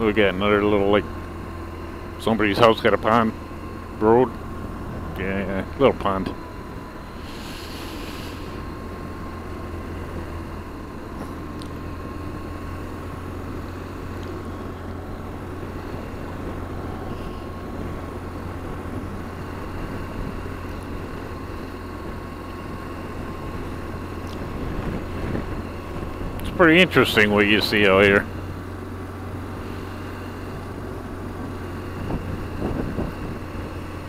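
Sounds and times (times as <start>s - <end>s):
motorcycle engine running: 0.0s - 34.0s
wind and road noise: 0.0s - 34.0s.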